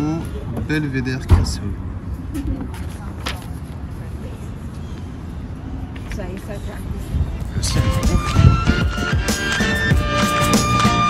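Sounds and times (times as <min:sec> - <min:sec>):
faint voices: 0:00.0 - 0:08.6.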